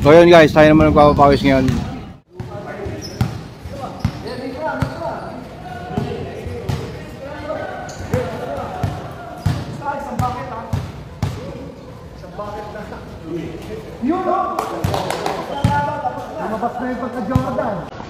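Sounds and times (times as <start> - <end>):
players' voices: 0.0 - 18.0.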